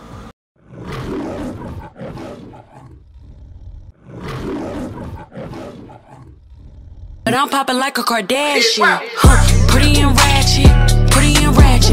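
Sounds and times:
lion grunts: 0:00.6 - 0:07.3
lion roaring: 0:00.6 - 0:07.3.

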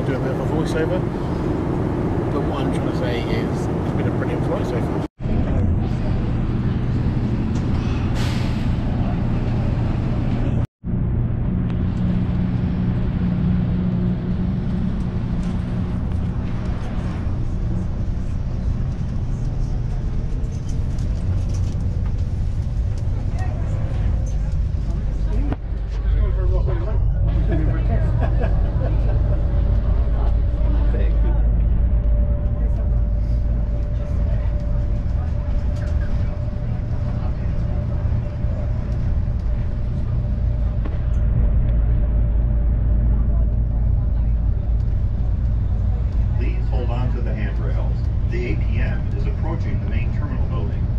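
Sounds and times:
steady whine: 0:00.0 - 0:50.9
train low rumble: 0:00.0 - 0:50.9.

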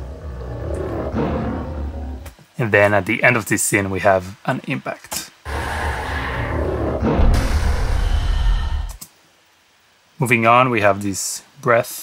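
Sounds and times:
deep muffled tiger roar: 0:00.0 - 0:02.2.

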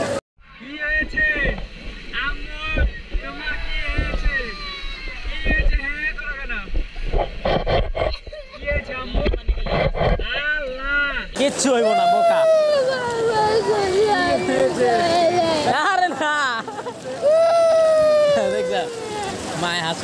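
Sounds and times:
small waves washing: 0:00.0 - 0:20.0
people talking and calling: 0:00.5 - 0:20.0
wind buffeting microphone: 0:01.0 - 0:10.4.

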